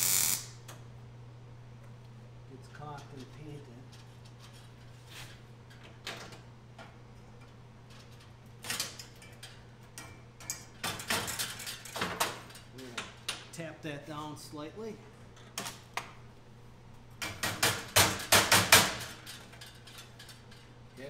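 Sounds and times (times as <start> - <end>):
welder crackling: 0.0 - 0.6
low shop hum: 0.0 - 21.0.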